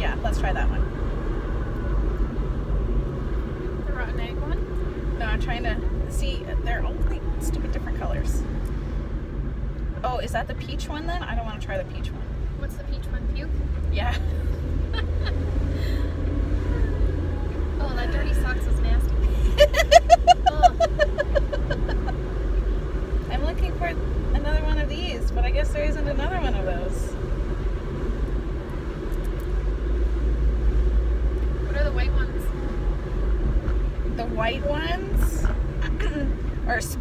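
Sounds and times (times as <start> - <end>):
people talking: 0.0 - 0.8, 3.9 - 4.6, 5.2 - 8.4, 10.0 - 14.3, 17.8 - 22.1, 23.3 - 27.1, 31.7 - 32.5, 34.1 - 37.0
car road and engine rumble: 0.0 - 37.0
woman laughing: 14.0 - 16.0, 19.2 - 22.2.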